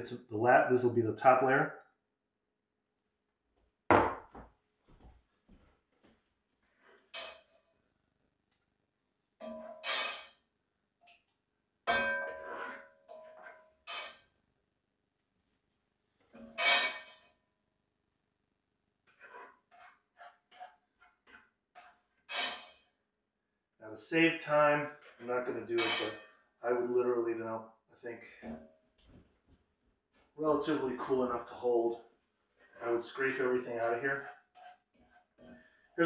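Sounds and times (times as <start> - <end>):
metal pots clanking: 9.4 - 10.3.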